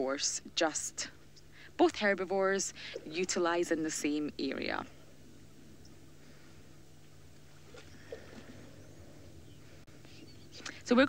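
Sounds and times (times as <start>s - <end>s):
woman speaking: 0.0s - 1.2s, 1.8s - 4.9s, 10.7s - 11.0s
faint low hum: 0.0s - 11.0s.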